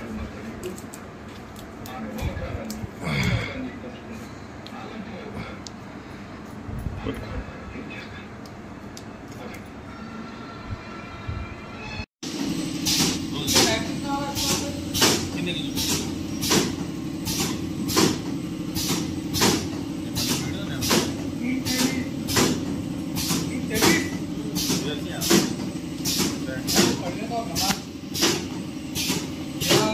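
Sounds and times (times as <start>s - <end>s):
packaging machine hum: 12.3s - 29.9s.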